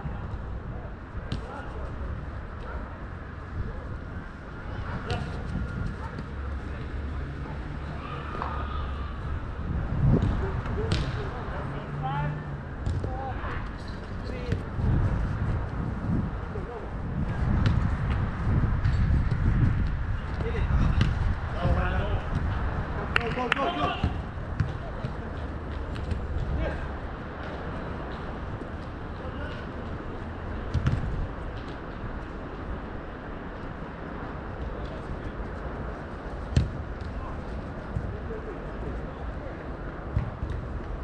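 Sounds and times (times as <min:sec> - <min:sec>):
distant players shouting: 0:07.6 - 0:09.5, 0:23.0 - 0:24.4
ball kicked: 0:10.1 - 0:11.2, 0:24.0 - 0:25.2, 0:30.7 - 0:31.2, 0:36.5 - 0:37.1, 0:40.1 - 0:40.6.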